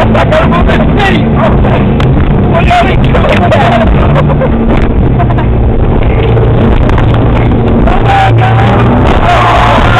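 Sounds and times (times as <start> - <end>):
motorboat engine drone: 0.0 - 9.9
water rushing: 0.0 - 9.9.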